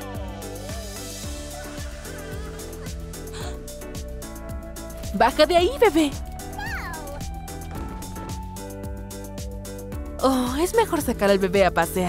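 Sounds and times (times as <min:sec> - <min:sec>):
background music with beat: 0:00.0 - 0:12.0.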